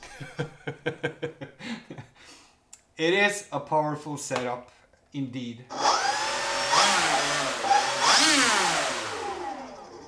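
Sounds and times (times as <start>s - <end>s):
electric motors and propellers whining: 5.7s - 10.0s.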